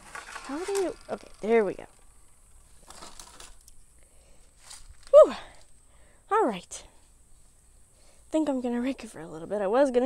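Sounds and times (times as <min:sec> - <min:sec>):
rustling: 0:00.0 - 0:06.1.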